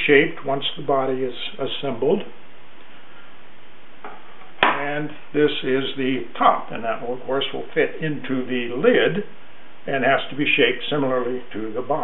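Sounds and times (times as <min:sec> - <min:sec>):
man speaking: 0:00.0 - 0:02.4, 0:04.6 - 0:12.0
room tone hiss: 0:00.0 - 0:12.0.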